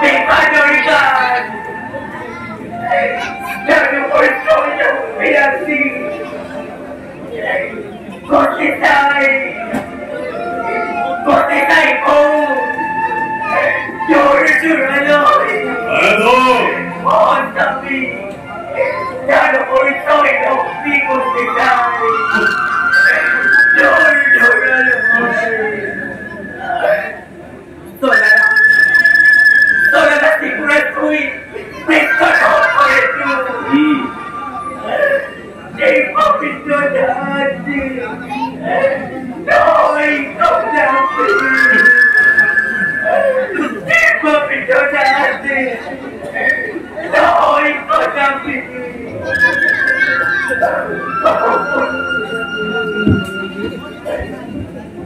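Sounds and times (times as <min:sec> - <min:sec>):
microphone feedback whistle: 0:22.0 - 0:26.8, 0:28.0 - 0:30.6, 0:40.6 - 0:43.9, 0:49.2 - 0:54.6.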